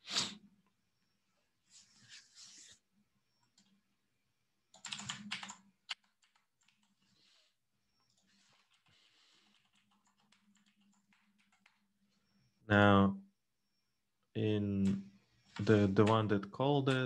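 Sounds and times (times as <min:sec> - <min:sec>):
computer keyboard typing: 0:04.7 - 0:07.0, 0:08.1 - 0:11.9, 0:15.6 - 0:17.0.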